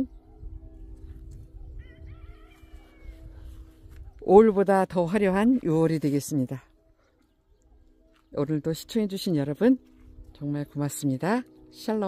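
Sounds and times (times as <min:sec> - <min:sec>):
wind on microphone: 0:00.0 - 0:04.4
low hum of held tones: 0:00.0 - 0:12.0.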